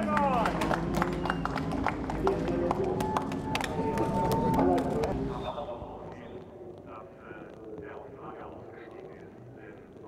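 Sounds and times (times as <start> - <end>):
scattered claps: 0.0 - 5.3
people cheering and shouting: 2.6 - 5.2
long drawn-out shout: 3.0 - 5.0.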